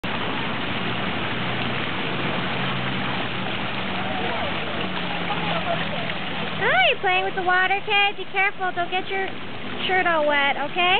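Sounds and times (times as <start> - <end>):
fountain water rushing: 0.0 - 10.9
water running over pebbles: 0.0 - 10.9
faint voices: 3.7 - 9.3.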